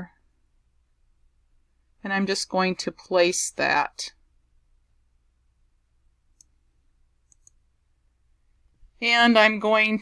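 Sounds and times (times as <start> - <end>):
faint computer mouse clicks: 6.3 - 6.6, 7.2 - 7.6.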